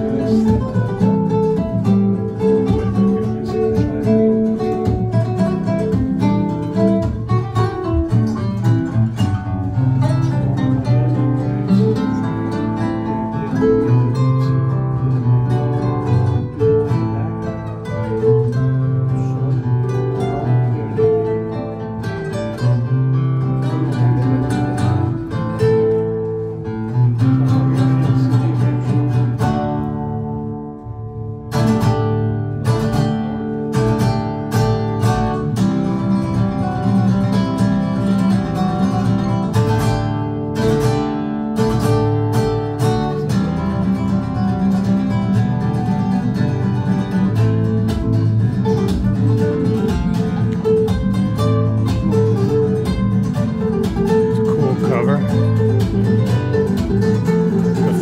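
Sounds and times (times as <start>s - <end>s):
acoustic guitar music over loudspeakers: 0.0s - 58.0s.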